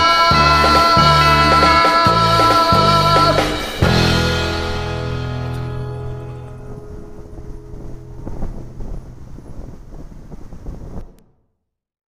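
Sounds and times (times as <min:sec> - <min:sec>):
karaoke backing track chord: 0:00.0 - 0:09.8
rumbling and knocking on microphone: 0:05.4 - 0:11.2.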